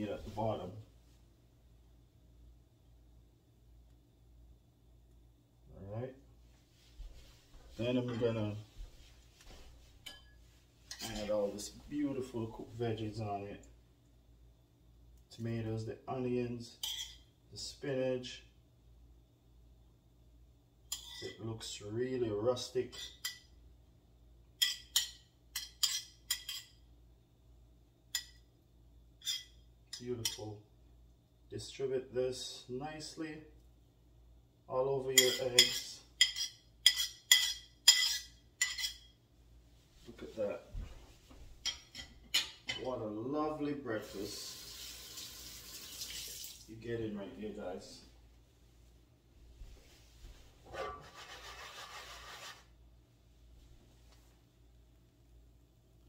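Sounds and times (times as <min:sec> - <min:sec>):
utensil scraping ceramic plate: 0:50.7 - 0:52.7.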